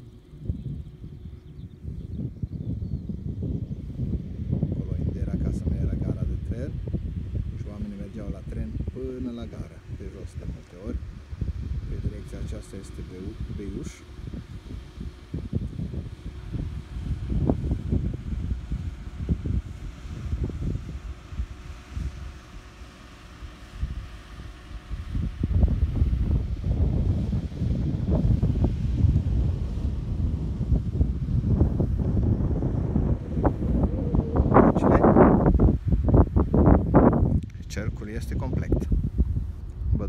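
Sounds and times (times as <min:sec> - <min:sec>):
wind buffeting microphone: 0:00.0 - 0:40.0
low rumble: 0:25.0 - 0:40.0.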